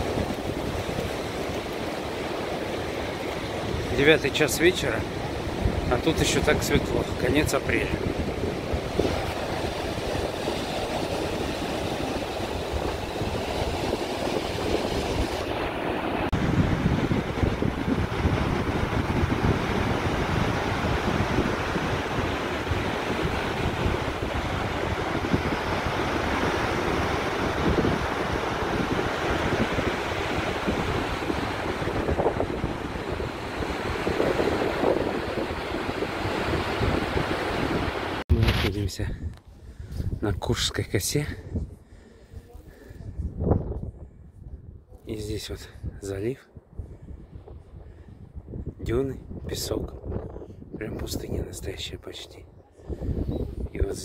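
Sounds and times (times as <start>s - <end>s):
wind buffeting microphone: 0.0s - 4.0s, 4.8s - 40.5s, 41.3s - 45.0s, 45.7s - 51.6s, 52.4s - 54.0s
surf breaking on beach: 0.0s - 38.8s.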